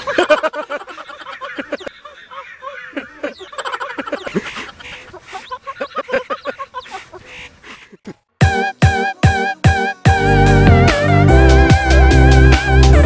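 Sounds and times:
man laughing through mask: 0:00.0 - 0:10.5.

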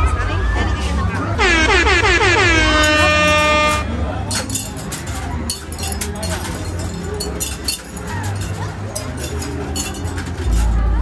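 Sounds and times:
loud horn-like warbling tone: 0:01.4 - 0:04.0.

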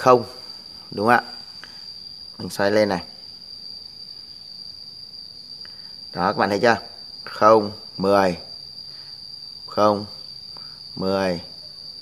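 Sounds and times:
cricket trilling: 0:00.0 - 0:12.0.

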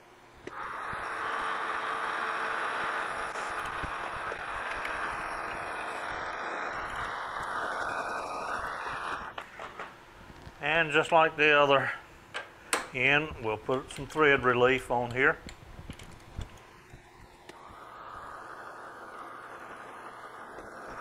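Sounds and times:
metal lathe cutting hiss: 0:00.5 - 0:09.4, 0:16.7 - 0:21.0.

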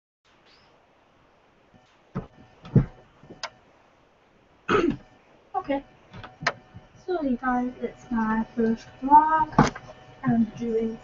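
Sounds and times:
person clearing throat: 0:04.7 - 0:05.1
person coughing: 0:04.7 - 0:05.1.

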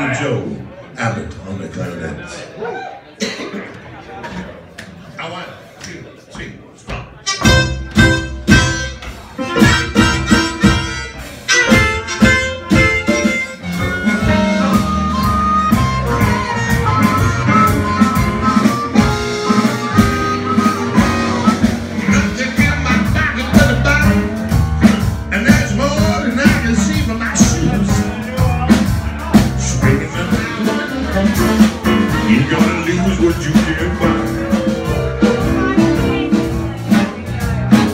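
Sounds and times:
clarinet: 0:07.2 - 0:22.0
amplified harmonica: 0:07.2 - 0:22.2.

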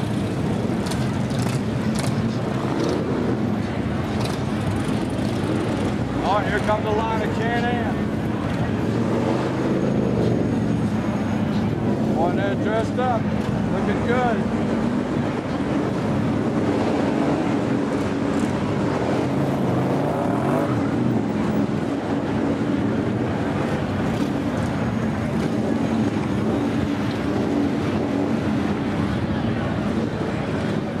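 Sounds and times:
motorcycle engines rumbling: 0:00.0 - 0:31.0
murmur of crowd voices: 0:00.0 - 0:31.0.

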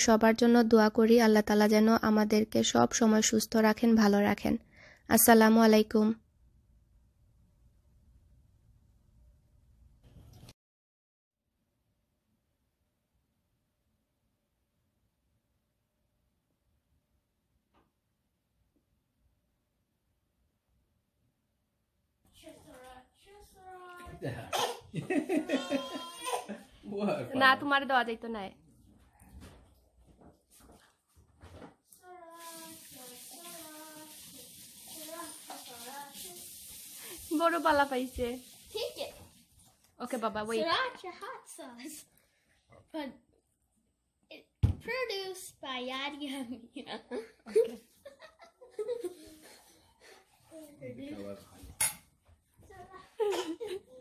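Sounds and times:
tableware clink: 0:51.8 - 0:52.1.

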